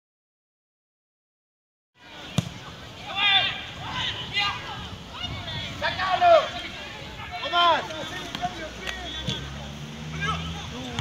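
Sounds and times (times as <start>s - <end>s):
players shouting: 2.0s - 11.0s.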